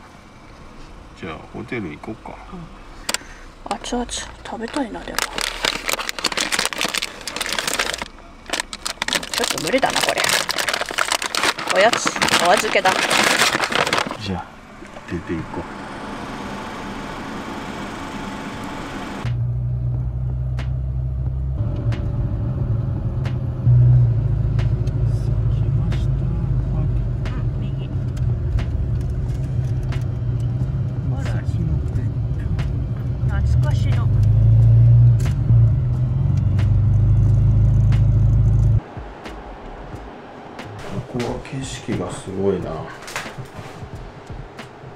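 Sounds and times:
car engine and road drone: 0.0 - 44.9.

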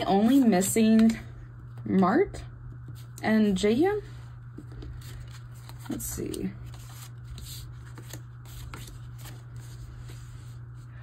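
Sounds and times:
postcards rustling and sliding: 0.0 - 1.2, 4.6 - 10.9.

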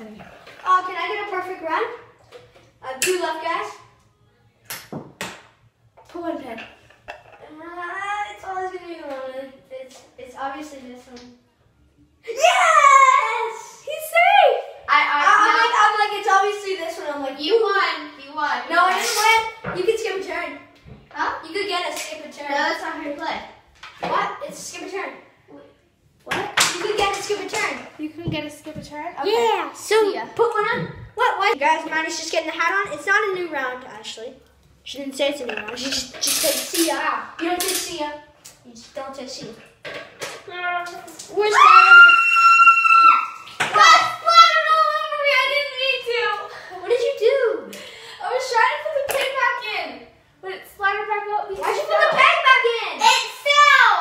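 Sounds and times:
children talking and calling out: 12.2 - 25.7, 40.5 - 54.0.

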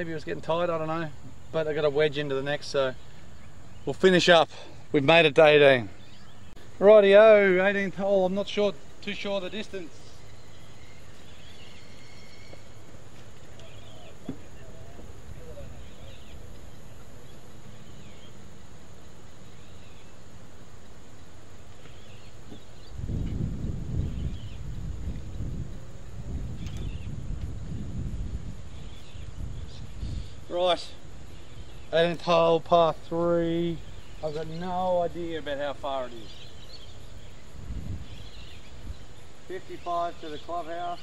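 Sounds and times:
high insect drone: 0.0 - 41.0
bird chirps: 5.8 - 6.9, 9.0 - 25.6, 26.5 - 27.2, 28.7 - 32.9, 33.5 - 41.0
wind buffeting microphone: 22.4 - 30.5, 36.8 - 39.2.

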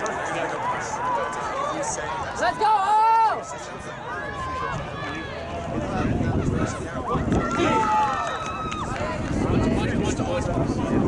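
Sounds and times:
outdoor background noise: 0.0 - 11.0
voices calling and shouting: 0.0 - 11.0.

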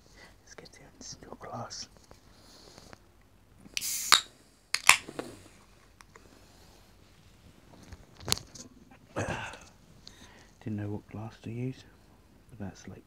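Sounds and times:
gas hissing from a can: 3.8 - 4.3.

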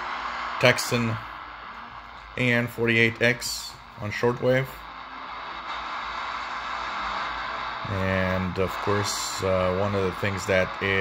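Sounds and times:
faint radio music: 0.0 - 11.0
radio hiss and static: 0.0 - 11.0.

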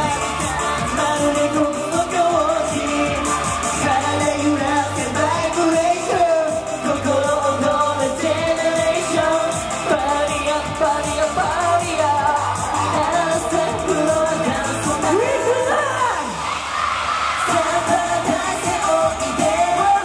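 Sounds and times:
pop backing track: 0.0 - 16.6, 17.3 - 20.0
male group singing pop song: 0.0 - 20.0.

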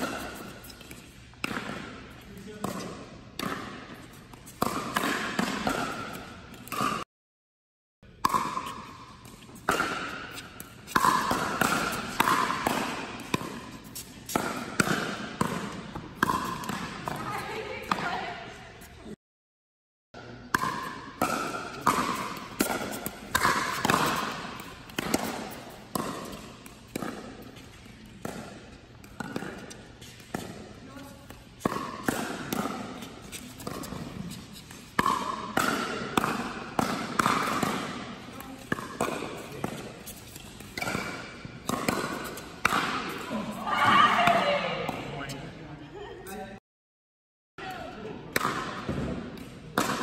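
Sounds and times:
paddles hitting pickleball: 0.0 - 7.0, 8.2 - 18.5, 20.5 - 45.2, 47.6 - 50.0.

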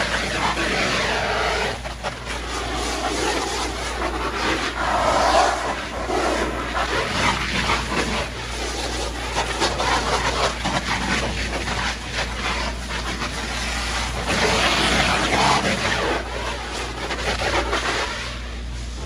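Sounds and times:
hose spray splashing on plastic: 0.0 - 19.0
steady low rumble: 0.0 - 19.0.

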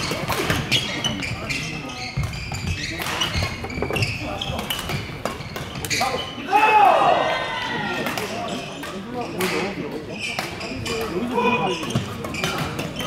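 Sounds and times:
shoes squeaking on court: 0.0 - 6.4, 10.1 - 13.0
voices echoing in hall: 0.0 - 13.0.

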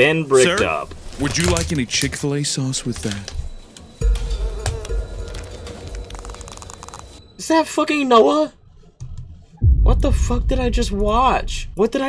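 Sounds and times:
low rumble: 8.6 - 12.0.

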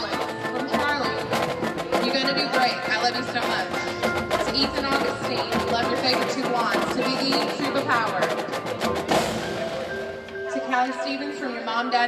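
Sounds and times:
marching band playing: 0.0 - 11.8.

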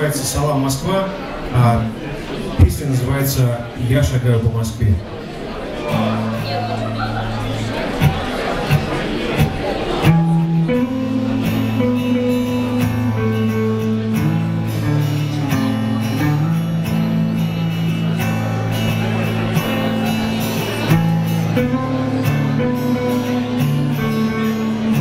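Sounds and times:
strummed acoustic guitar: 5.3 - 25.0
electric guitar: 5.9 - 25.0.

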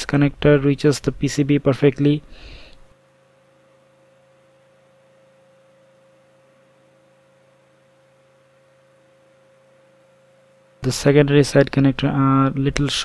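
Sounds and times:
faint electrical hum: 0.0 - 13.0
thin steady tone: 2.4 - 13.0.

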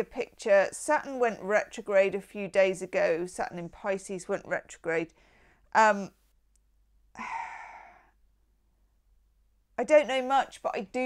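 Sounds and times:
woman sighing: 7.1 - 8.2.

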